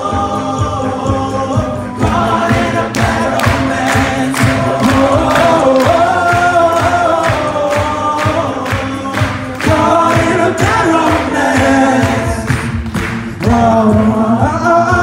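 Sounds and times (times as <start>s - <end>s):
men singing in close harmony: 0.0s - 15.0s
vocal percussion beat: 0.0s - 15.0s.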